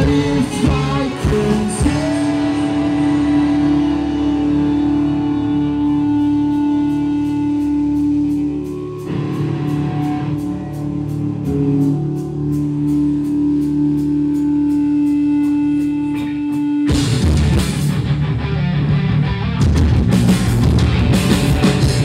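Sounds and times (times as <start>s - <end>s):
held guitar note: 0.0s - 22.0s
live rock band: 0.0s - 22.0s.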